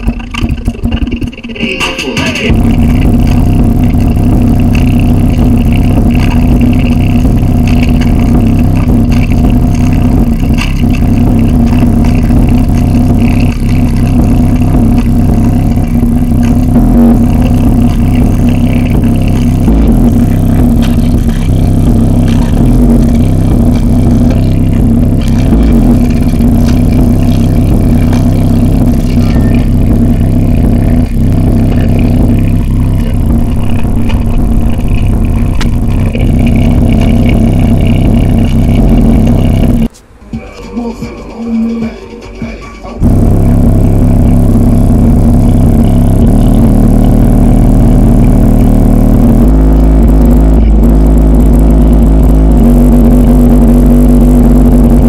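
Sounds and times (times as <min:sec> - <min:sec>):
distorted bass from woofer: 0:00.0 - 0:40.0, 0:43.0 - 0:55.0.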